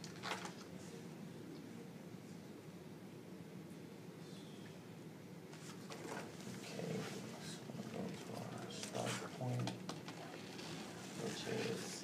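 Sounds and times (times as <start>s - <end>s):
low voice: 6.6s - 10.4s, 11.1s - 12.0s.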